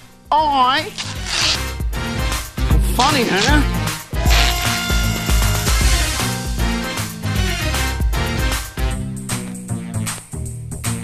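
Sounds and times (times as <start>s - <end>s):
music with low bass: 1.7s - 11.0s.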